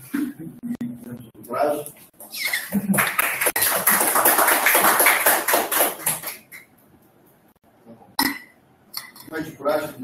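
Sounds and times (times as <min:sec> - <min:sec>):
audience applauding: 0:02.9 - 0:06.6.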